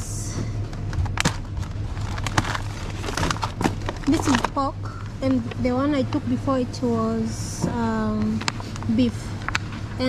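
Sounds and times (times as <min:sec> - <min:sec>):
steady low hum: 0:00.0 - 0:10.0
plastic trays and film crackling: 0:00.7 - 0:06.2.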